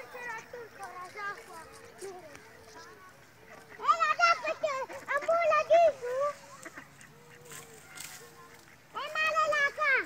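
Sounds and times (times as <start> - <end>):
ducks quacking: 0.0 - 10.0.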